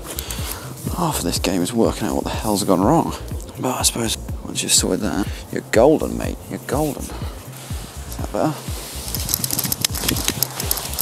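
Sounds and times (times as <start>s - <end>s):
background music with steady beat: 0.0s - 11.0s
fabric wing rustling and snapping: 9.0s - 11.0s.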